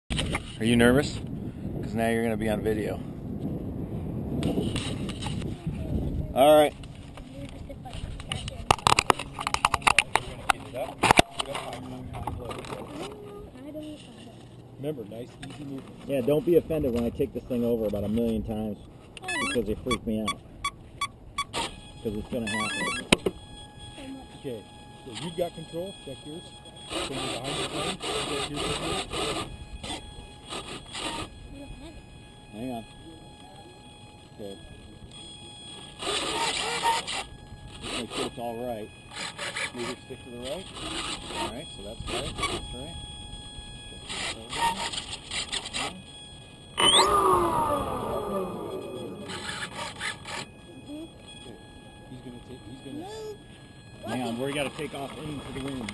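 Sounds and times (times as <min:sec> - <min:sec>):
faint high-pitched tones: 0:05.2 - 0:55.9
faint voices: 0:46.8 - 0:55.9.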